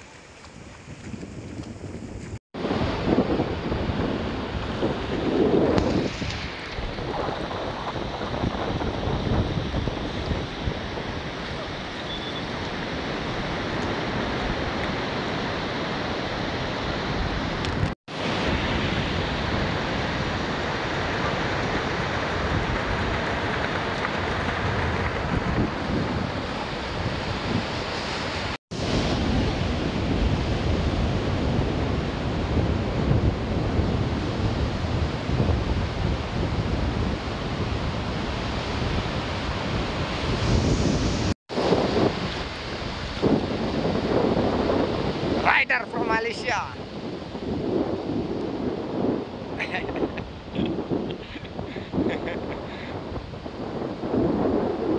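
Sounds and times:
wind on microphone: 0.0s - 54.9s
ocean surf: 2.2s - 54.9s.

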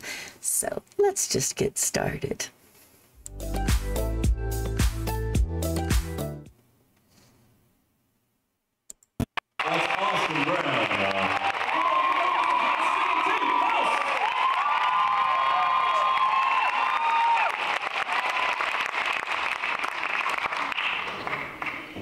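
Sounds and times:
audience cheering and applauding: 9.6s - 21.8s
high whoops: 11.3s - 18.6s.

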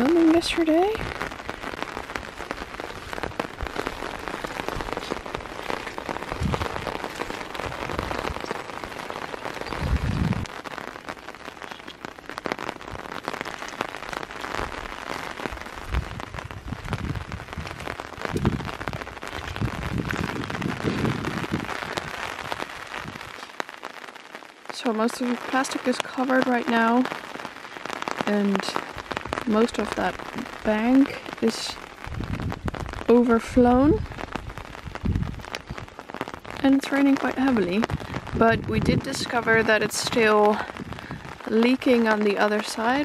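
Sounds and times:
heavy rain on a pond: 0.0s - 43.0s
dull low thumps: 2.3s - 8.5s, 9.7s - 10.5s, 15.8s - 22.3s, 34.8s - 35.9s.

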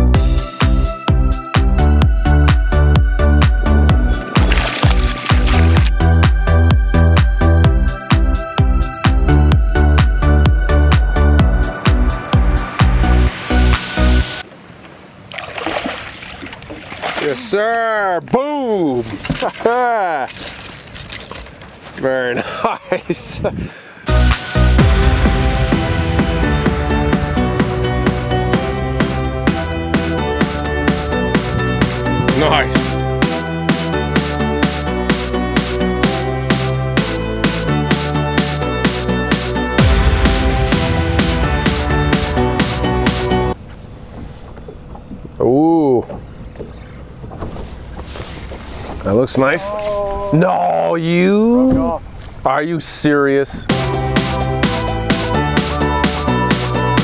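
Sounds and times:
wind: 0.0s - 33.7s, 39.9s - 57.0s
water noise: 3.4s - 6.4s, 11.7s - 21.9s, 39.9s - 50.7s
wind buffeting microphone: 23.0s - 23.9s, 31.1s - 32.4s.

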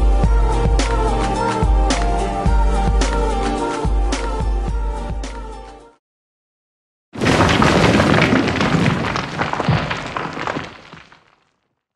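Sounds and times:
crackles of crumbling debris: 7.2s - 11.9s.

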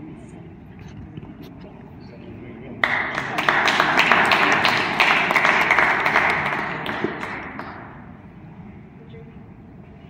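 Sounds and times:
crowd applauding: 2.8s - 8.1s.

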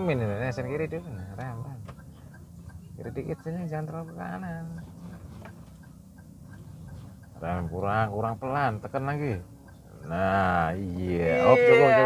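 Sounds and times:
low steady car hum: 0.0s - 12.0s.

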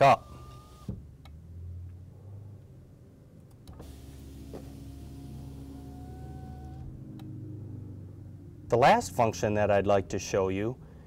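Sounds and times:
power window motor humming: 0.0s - 1.0s, 3.7s - 7.3s.

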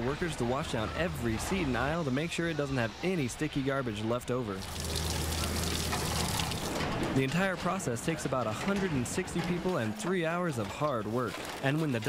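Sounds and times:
water splashing onto pavement: 4.6s - 6.8s.

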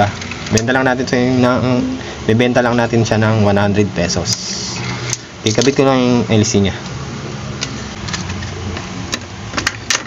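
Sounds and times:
ceiling fan motor humming: 0.0s - 10.0s.

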